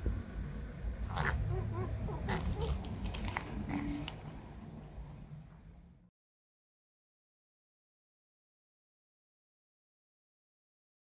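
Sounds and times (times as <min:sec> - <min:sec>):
cat wavering vocal sound: 0:01.1 - 0:02.8
cat crunching dry kibble: 0:02.8 - 0:04.3.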